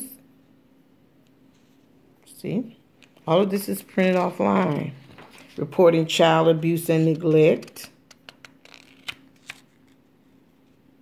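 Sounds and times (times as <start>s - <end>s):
binder pages rustling and clicking: 3.0s - 6.1s, 6.7s - 10.0s.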